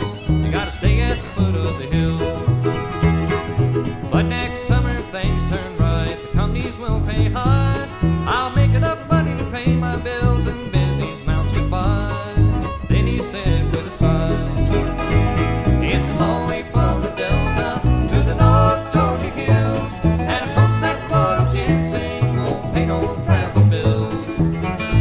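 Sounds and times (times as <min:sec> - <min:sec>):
bluegrass band playing: 0:00.0 - 0:25.0
plucked double bass: 0:00.0 - 0:25.0.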